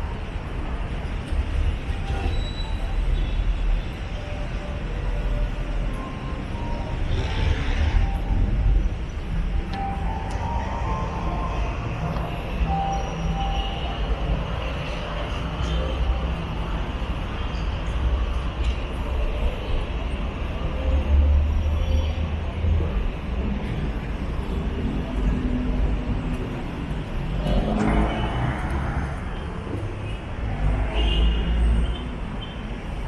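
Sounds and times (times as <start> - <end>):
traffic and train rumble: 0.0 - 33.0.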